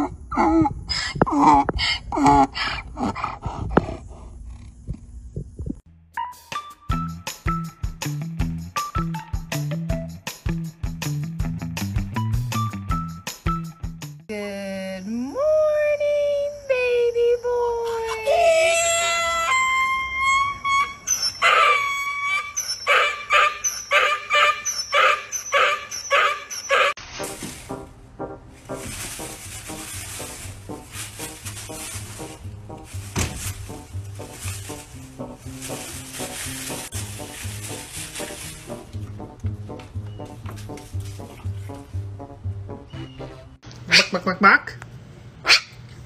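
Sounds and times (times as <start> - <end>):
music with low beat: 5.4 - 14.2, 38.6 - 43.5
donkey braying: 18.2 - 27.0.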